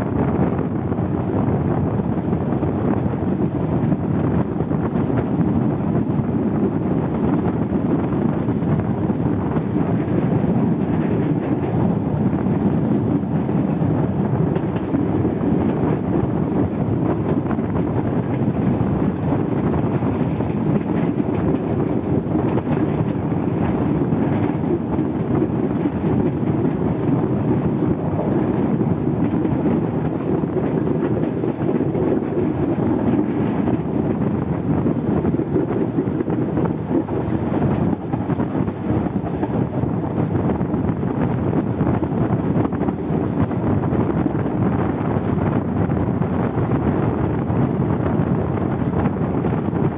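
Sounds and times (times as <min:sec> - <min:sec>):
rail car rumbling along track: 0:00.0 - 0:49.9.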